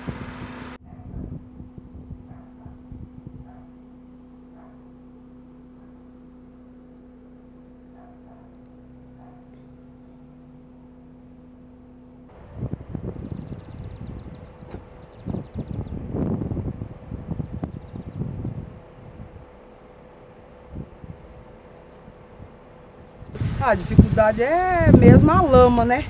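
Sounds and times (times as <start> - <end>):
wind buffeting microphone: 0.0 - 3.8, 12.3 - 26.0.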